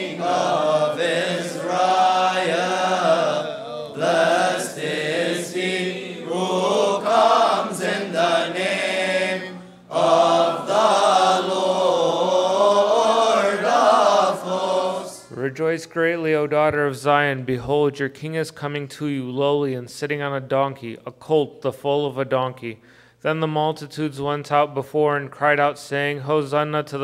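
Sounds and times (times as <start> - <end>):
men chanting a hymn: 0.0 - 15.5.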